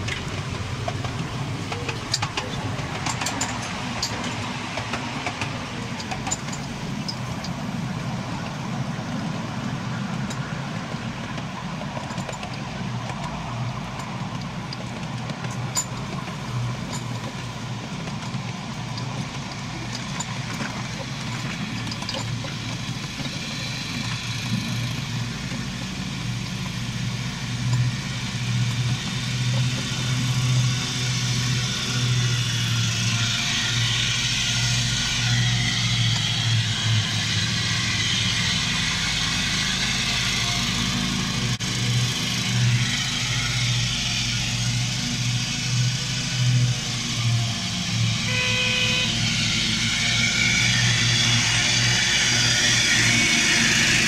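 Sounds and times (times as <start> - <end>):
carriages rattling on track: 0.0 - 54.0
miniature train engine drone: 0.0 - 54.0
ride-on lawn mower mowing: 0.0 - 54.0
train toot: 30.0 - 54.0.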